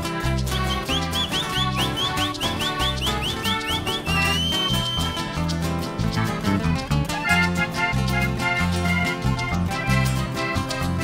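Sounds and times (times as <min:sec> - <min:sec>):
live band with bass and guitar: 0:00.0 - 0:11.0
high whistle chirping: 0:00.5 - 0:05.4.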